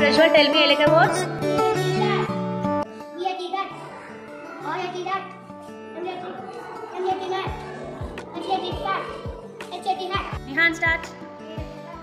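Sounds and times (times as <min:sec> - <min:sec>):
child reading aloud: 0:01.9 - 0:02.3, 0:03.1 - 0:10.5
background music with steady beat: 0:05.3 - 0:12.0.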